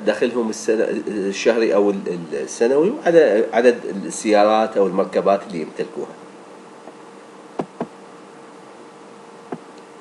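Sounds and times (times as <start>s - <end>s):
faint hum: 0.0s - 10.0s
sharp clicks: 7.6s - 7.9s.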